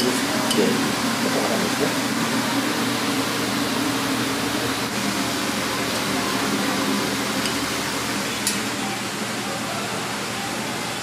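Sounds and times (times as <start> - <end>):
gas burners rushing: 0.0 - 11.0.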